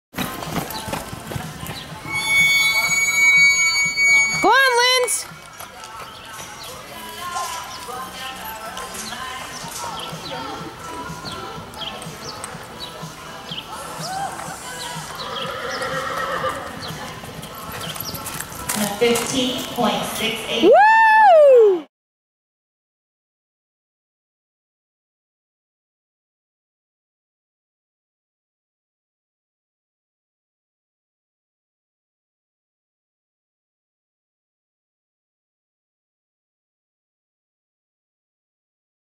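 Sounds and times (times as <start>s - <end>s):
horse galloping on dirt: 0.2s - 2.1s, 5.2s - 10.2s, 15.0s - 20.2s
murmur of voices: 0.4s - 20.7s
steady high-pitched tone: 2.1s - 5.0s.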